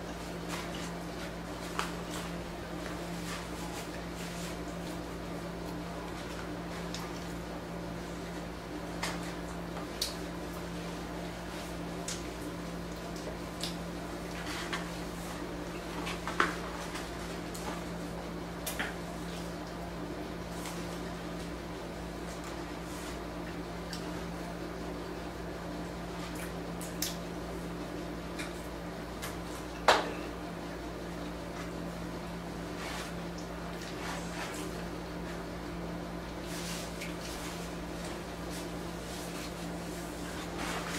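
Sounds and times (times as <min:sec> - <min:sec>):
steady low hum: 0:00.0 - 0:40.9.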